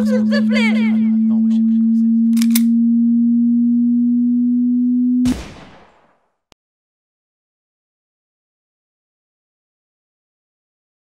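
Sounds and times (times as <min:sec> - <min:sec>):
low electronic tone: 0:00.0 - 0:05.7
loud burst: 0:05.2 - 0:06.4.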